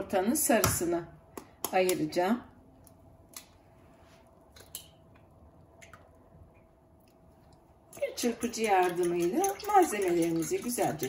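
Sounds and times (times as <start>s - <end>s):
egg white dripping into bowl: 7.9s - 11.0s.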